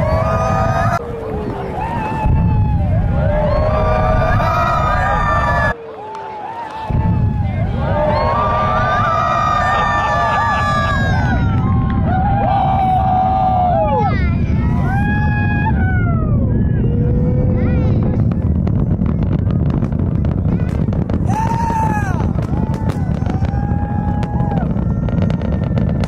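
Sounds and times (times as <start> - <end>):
distant rocket engines rumbling: 0.0 - 5.8, 6.7 - 26.0
spectators whooping: 0.0 - 17.7, 21.2 - 26.0.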